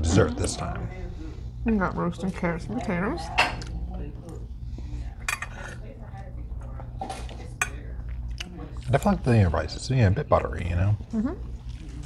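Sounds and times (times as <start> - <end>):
cutlery scraping ceramic plates: 5.2 - 5.8.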